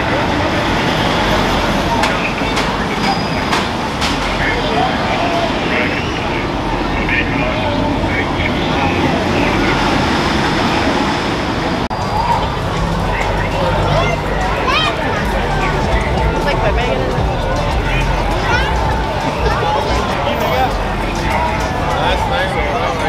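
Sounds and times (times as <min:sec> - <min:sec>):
crowd chatter: 0:00.0 - 0:23.0
steady traffic noise: 0:00.0 - 0:23.0.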